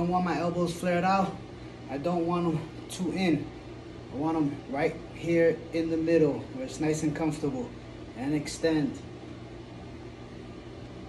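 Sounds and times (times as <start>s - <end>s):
ventilation hum and hiss: 0.0s - 11.0s.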